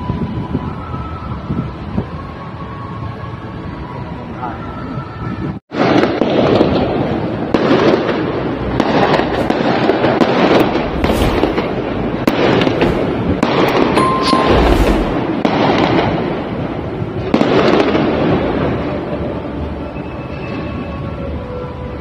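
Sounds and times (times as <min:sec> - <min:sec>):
fireworks bursting and crackling: 0:07.5 - 0:16.2.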